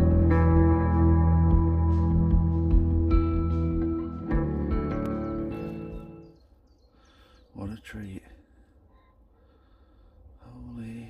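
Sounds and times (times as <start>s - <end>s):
instrumental music with sustained chords: 0.0s - 6.4s.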